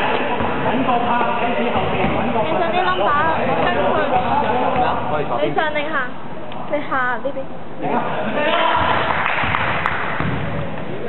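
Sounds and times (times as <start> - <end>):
players' voices echoing: 0.0 - 5.8.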